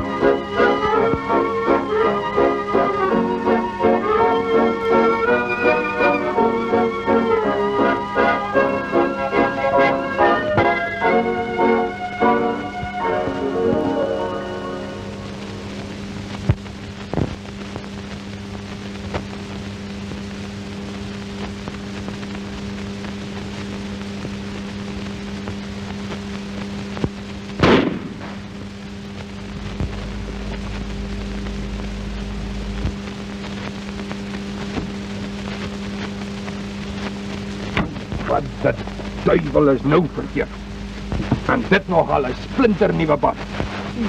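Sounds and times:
crackling film hiss: 0:00.0 - 0:44.0
low hum: 0:00.0 - 0:44.0
loud sudden noise: 0:27.6 - 0:28.7
low rumble: 0:27.6 - 0:33.6.

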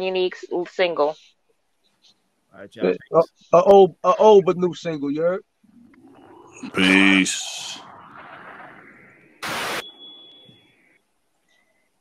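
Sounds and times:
burst of static: 0:05.8 - 0:11.0.

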